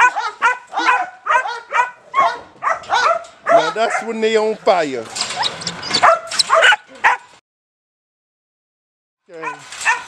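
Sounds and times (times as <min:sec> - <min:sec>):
puppy barking aggressively: 0:00.0 - 0:04.1, 0:05.3 - 0:07.3, 0:09.4 - 0:10.0.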